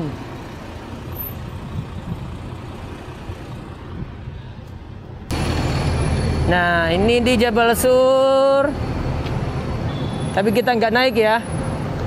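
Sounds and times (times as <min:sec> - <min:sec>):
buses idling: 0:00.0 - 0:09.9
close engine rumble: 0:00.0 - 0:12.0.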